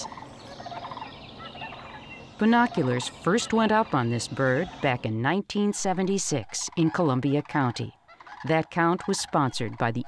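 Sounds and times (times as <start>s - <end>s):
cranes calling faintly: 0.0s - 5.1s, 5.8s - 10.0s.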